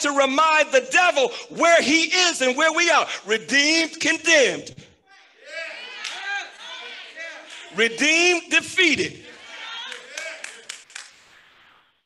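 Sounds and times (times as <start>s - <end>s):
congregation calling out: 0.0s - 10.8s
hand claps: 9.8s - 11.2s.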